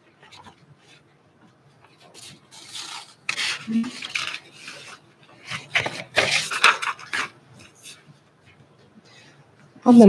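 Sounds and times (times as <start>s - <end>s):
rustling and rubbing: 1.9s - 8.2s.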